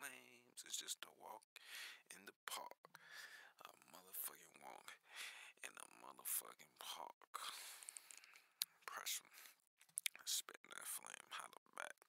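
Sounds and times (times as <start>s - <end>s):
faint whispered voice: 2.0s - 2.8s, 5.6s - 7.8s, 8.8s - 12.0s.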